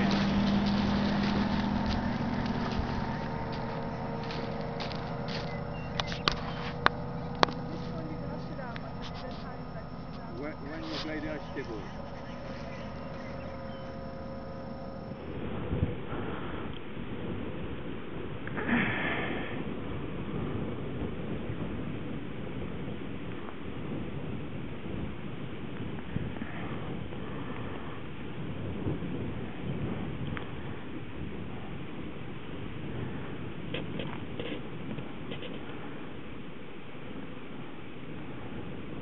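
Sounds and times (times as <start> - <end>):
steady hum: 0.0 - 16.7
wind buffeting microphone: 0.0 - 39.0.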